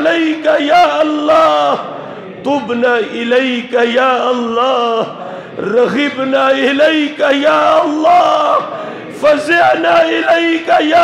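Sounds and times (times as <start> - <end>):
man chanting: 0.0 - 11.0.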